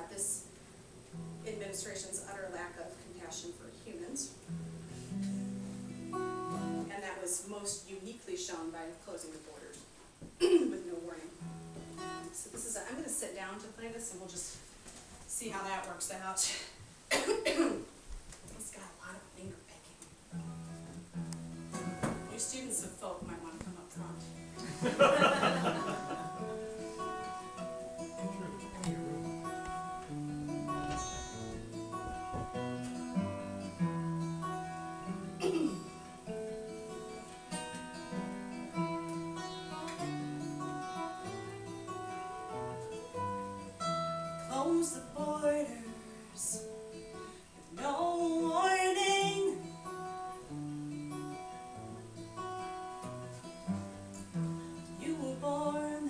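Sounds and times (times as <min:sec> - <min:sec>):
acoustic guitars finger-picking: 0:00.0 - 0:13.3, 0:19.4 - 0:56.0.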